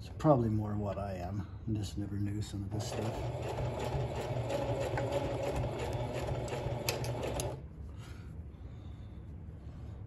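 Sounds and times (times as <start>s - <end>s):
sewing machine running: 2.8s - 7.6s.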